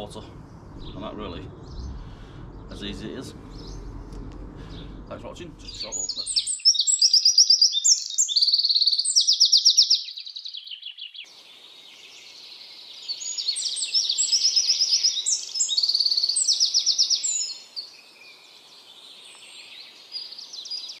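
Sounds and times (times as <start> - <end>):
songbirds chirping: 0.0 - 21.0.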